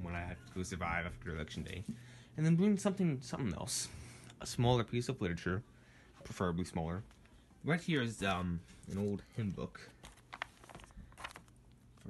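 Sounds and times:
book pages rustling: 8.2 - 12.0.

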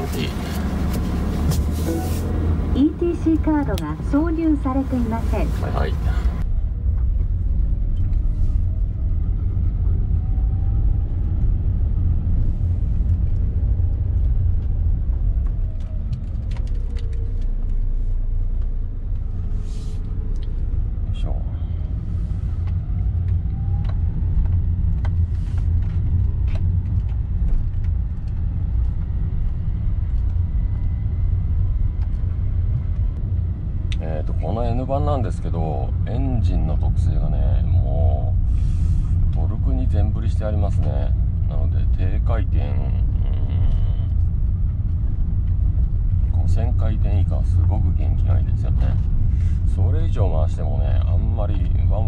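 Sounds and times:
road noise: 0.0 - 52.0
van engine rumble: 0.0 - 52.0.

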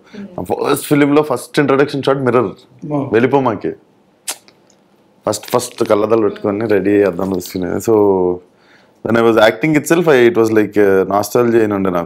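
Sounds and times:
man speaking: 0.0 - 3.8, 5.2 - 8.4, 9.0 - 12.0
sharp click: 4.3 - 4.8.

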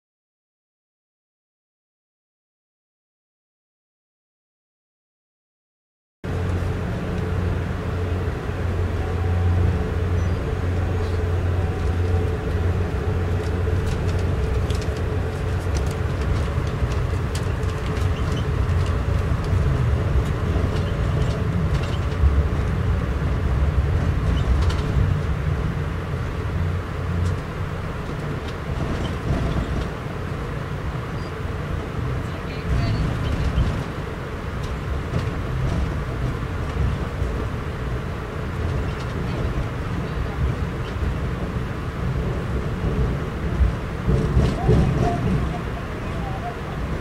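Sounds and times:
train rumble from inside coach: 6.2 - 47.0
wheels clicking on rails: 10.7 - 25.4, 26.5 - 47.0.

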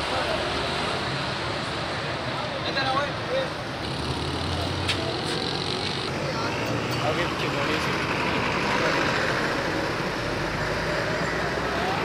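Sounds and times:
roadside traffic: 0.0 - 12.0.

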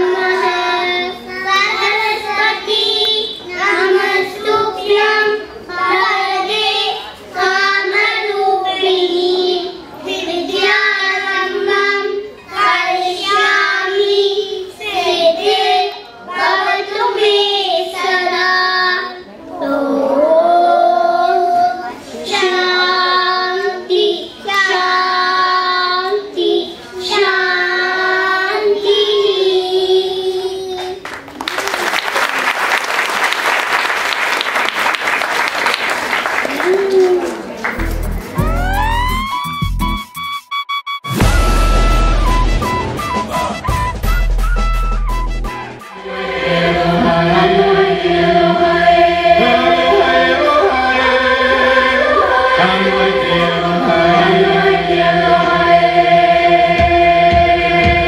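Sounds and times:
children singing unaccompanied: 0.0 - 31.0, 45.9 - 58.0.

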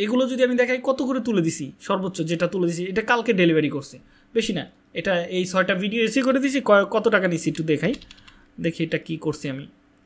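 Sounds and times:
man speaking: 0.0 - 9.8
keyboard typing clicks: 7.5 - 8.4.

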